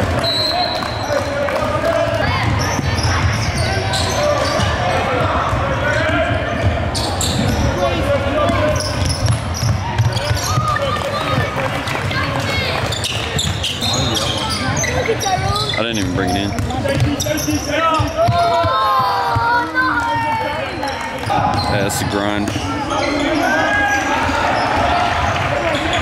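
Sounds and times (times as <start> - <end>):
indistinct talking voices: 0.6 - 26.0
basketball bouncing on hardwood: 16.5 - 17.2.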